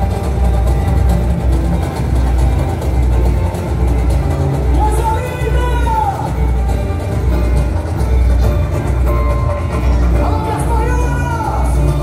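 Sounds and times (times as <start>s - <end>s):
bass drums beating: 0.0s - 12.0s
samba band playing live: 0.0s - 12.0s.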